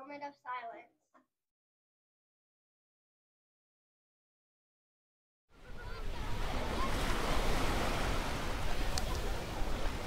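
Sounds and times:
breaking waves: 5.6 - 10.0.

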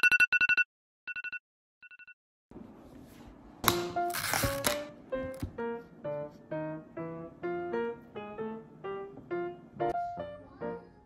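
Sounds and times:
background music: 3.7 - 11.0.

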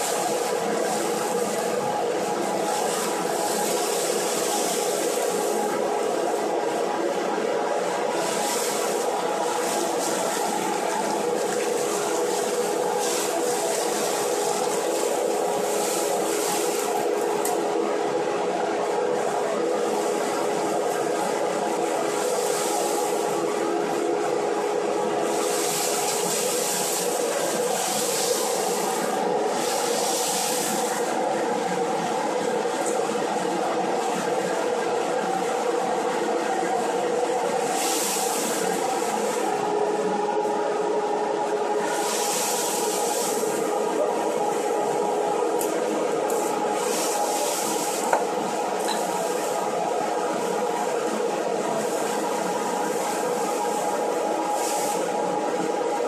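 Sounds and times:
blower humming: 0.0 - 56.0.

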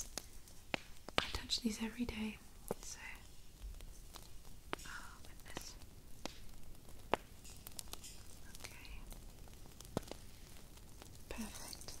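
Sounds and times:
person whispering: 1.3 - 3.3, 4.8 - 5.8, 8.5 - 9.1, 11.3 - 12.0
small props clicking and tapping: 2.7 - 12.0.

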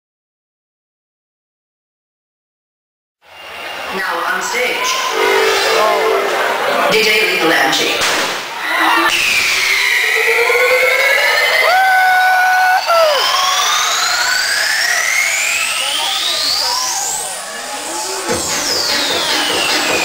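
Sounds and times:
falling electronic sweeps: 4.8 - 7.4, 9.1 - 19.9
rising electronic sweeps: 4.9 - 7.3, 9.2 - 11.7, 12.8 - 19.6
held electronic tone: 5.0 - 6.9.

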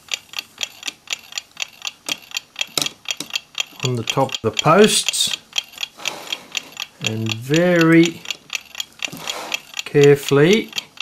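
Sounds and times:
mechanical clock ticking: 0.0 - 11.0.

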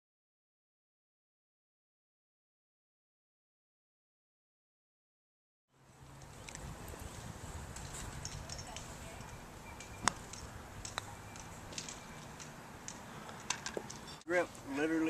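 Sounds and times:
faint high chirps: 9.1 - 12.4
putter striking golf ball: 9.8 - 14.0.

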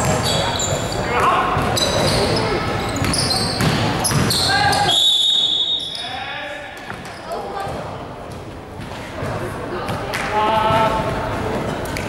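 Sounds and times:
players' voices: 0.0 - 12.0
basketball bouncing on court: 1.5 - 2.2, 3.0 - 4.5
referee's whistle blast: 4.3 - 6.1.

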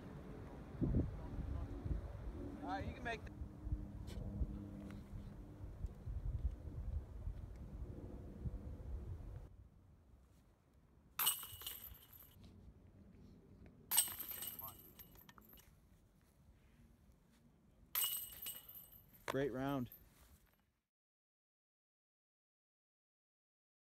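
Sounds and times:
wind rumbling on microphone: 0.1 - 9.6
disc hitting metal chains: 11.2 - 12.3, 13.9 - 15.6, 18.0 - 19.1.

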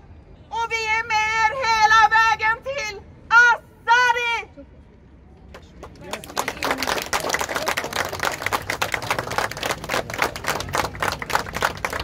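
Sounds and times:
small crowd applauding: 5.5 - 12.0.

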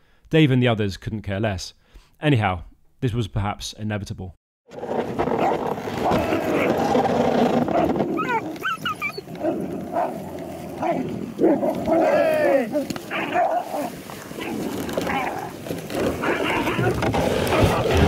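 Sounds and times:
dogs fighting and barking: 4.8 - 18.0
high bending dog yelps: 7.7 - 10.2, 10.8 - 15.5, 16.2 - 17.9.

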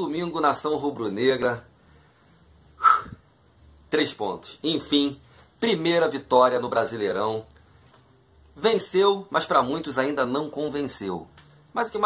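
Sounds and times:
man exhaling sharply: 2.8 - 3.2.

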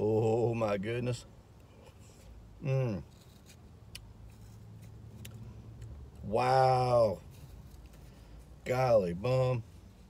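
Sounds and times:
low hum inside car: 0.0 - 10.0.

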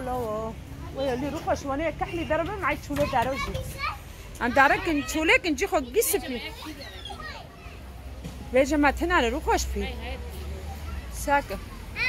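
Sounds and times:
young child talking: 2.9 - 5.4.

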